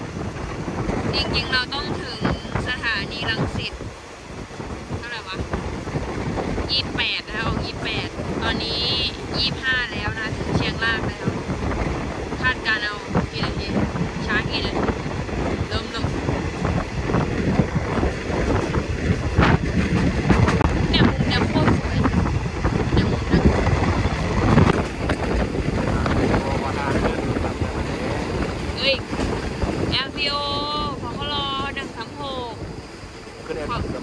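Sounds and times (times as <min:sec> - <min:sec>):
train wheels rumbling on rails: 0:00.0 - 0:34.0
wind rushing over microphone: 0:00.0 - 0:34.0.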